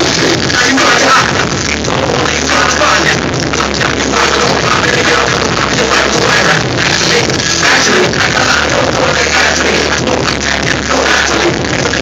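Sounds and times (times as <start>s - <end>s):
live hip-hop music with strong bass: 0.0s - 12.0s.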